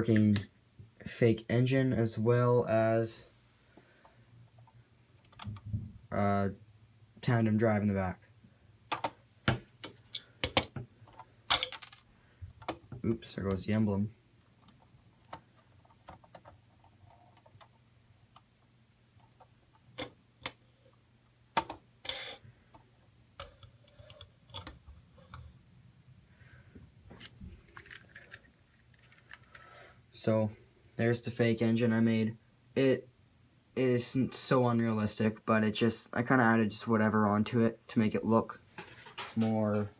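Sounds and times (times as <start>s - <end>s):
small plastic piece clattering: 27.1s - 29.6s.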